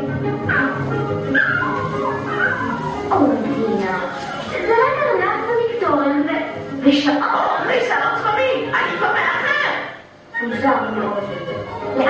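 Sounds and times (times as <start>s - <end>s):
orchestral music: 0.0s - 4.8s.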